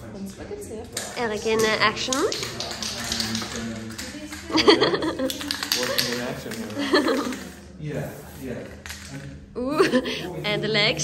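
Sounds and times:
spray can rattling: 1.0 - 9.5
person speaking: 9.6 - 11.0.

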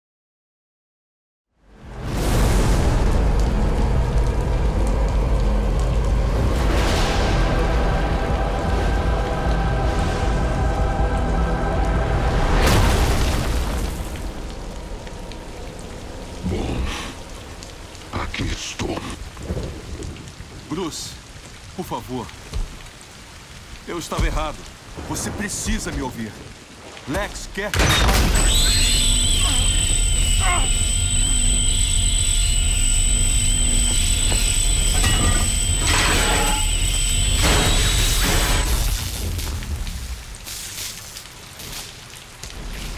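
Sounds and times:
heavy rain: 1.6 - 42.9
high wavering ringing tone: 28.4 - 38.6.

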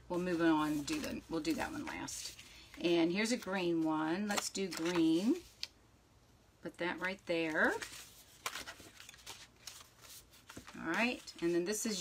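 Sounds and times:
card stock rustling and sliding: 7.5 - 12.0.

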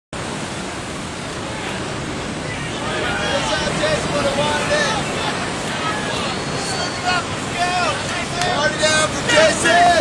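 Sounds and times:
surf breaking on rocks: 0.2 - 10.0.

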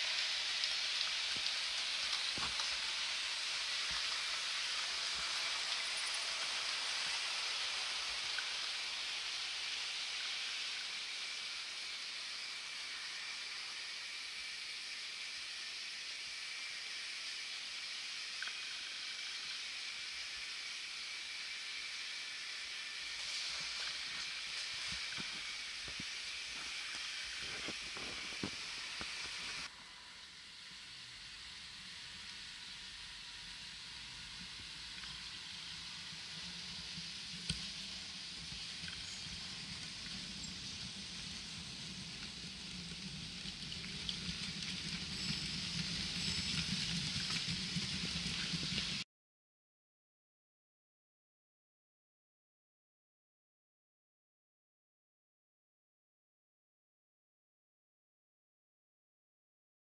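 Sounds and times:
model train wheels rattling on rails: 0.0 - 29.7, 35.0 - 49.0
thin steady high tone: 0.0 - 42.4, 44.6 - 47.5
faint high hiss: 0.0 - 49.0.

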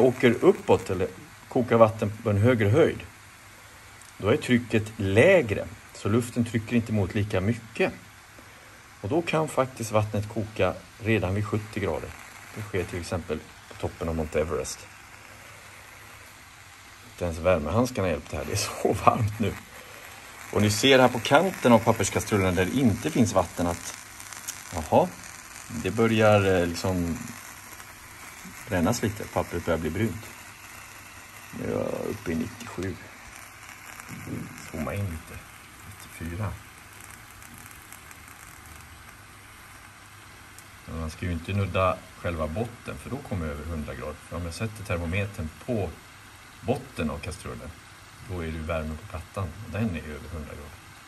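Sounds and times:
small crackles: 0.0 - 51.0
water boiling with faint hiss: 0.0 - 51.0.

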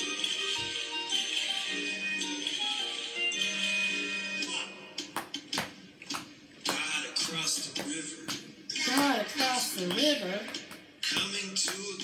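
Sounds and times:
person singing children's song: 6.6 - 12.0.

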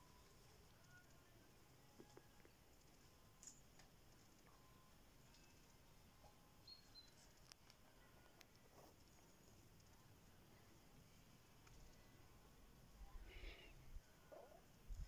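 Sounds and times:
faint chirps: 4.4 - 8.3.

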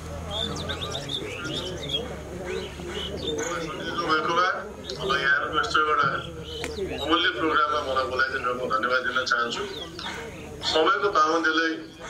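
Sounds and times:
birds chirping: 0.0 - 12.0
bird cooing: 0.3 - 4.1, 9.1 - 10.9.

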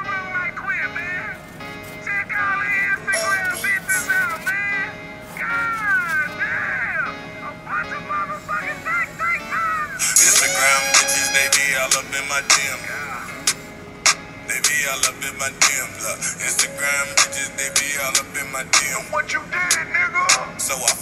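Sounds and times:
background music: 0.0 - 21.0
person singing: 2.3 - 13.7, 14.5 - 21.0.

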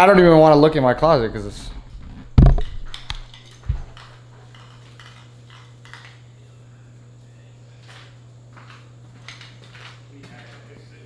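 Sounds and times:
low room hum: 0.0 - 11.0
camera thumping on stone countertop: 2.0 - 4.0.

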